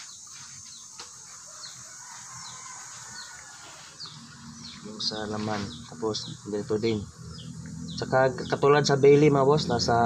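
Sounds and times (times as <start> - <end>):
small bird chirping: 0.0 - 9.3.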